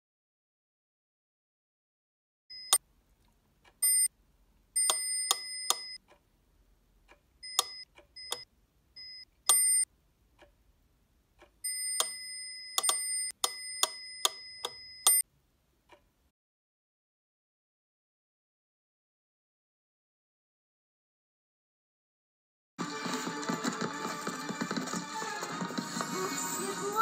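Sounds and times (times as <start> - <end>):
high electronic beeps: 4.8 - 6.0, 7.4 - 9.9, 11.7 - 15.2
clock and metronome ticking: 4.8 - 6.3, 7.0 - 10.6, 11.4 - 15.2.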